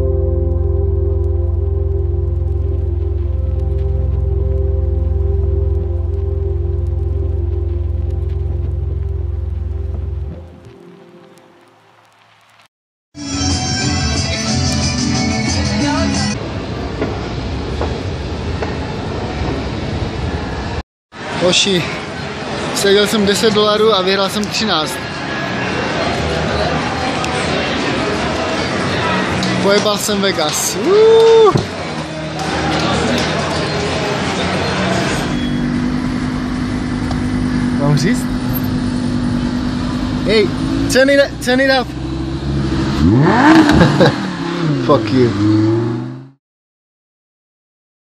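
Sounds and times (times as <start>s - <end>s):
escalator mechanical rumble: 0.0s - 10.4s, 34.8s - 42.7s
crowd babble: 13.6s - 42.1s
car engine idling: 33.0s - 43.3s.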